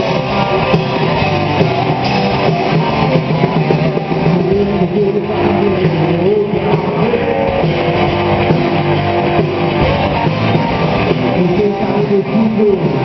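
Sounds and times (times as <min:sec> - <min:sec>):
lead guitar bending pitch: 0:00.0 - 0:13.0
live rock band playing: 0:00.0 - 0:13.0.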